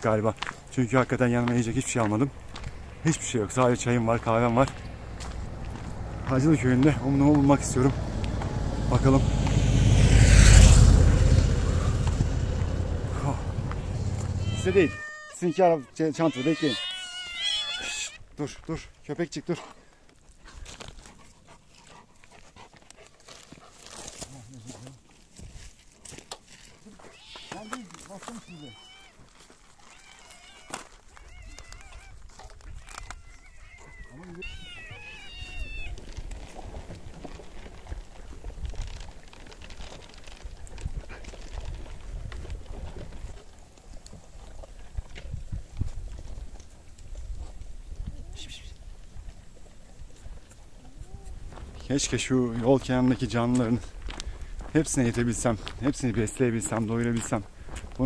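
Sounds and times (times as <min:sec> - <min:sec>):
low rumble: 0:04.7 - 0:14.7
cat meowing: 0:14.3 - 0:18.2, 0:27.0 - 0:29.2, 0:29.9 - 0:32.2, 0:32.8 - 0:36.0.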